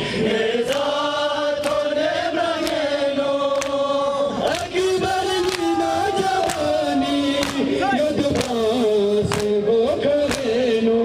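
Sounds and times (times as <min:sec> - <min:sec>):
men chanting a lament: 0:00.0 - 0:11.0
hands slapping chests: 0:01.6 - 0:01.9, 0:02.6 - 0:02.9, 0:03.5 - 0:03.8, 0:05.4 - 0:05.8, 0:06.4 - 0:06.8, 0:07.4 - 0:07.7, 0:08.3 - 0:08.6, 0:09.3 - 0:09.6, 0:10.3 - 0:10.5.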